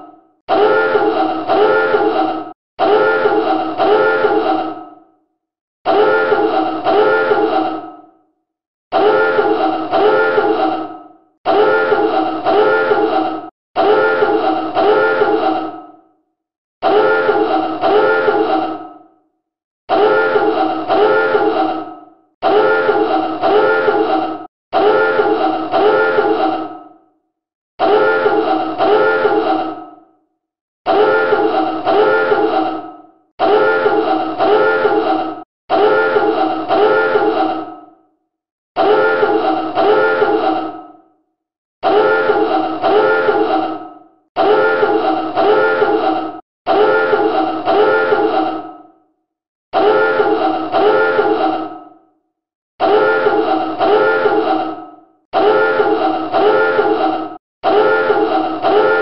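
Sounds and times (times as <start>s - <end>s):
alarm klaxon blasts: 0.5s - 2.2s, 2.8s - 4.5s, 5.9s - 7.5s, 8.9s - 10.6s, 11.5s - 13.1s, 13.8s - 15.5s, 16.8s - 18.4s, 19.9s - 21.5s, 22.4s - 24.1s, 24.8s - 26.4s, 27.8s - 29.5s, 30.9s - 32.6s, 33.4s - 35.1s, 35.7s - 37.3s, 38.8s - 40.5s, 41.8s - 43.5s, 44.4s - 46.1s, 46.7s - 48.3s, 49.8s - 51.3s, 52.8s - 54.5s, 55.4s - 57.0s, 57.6s - 59.0s.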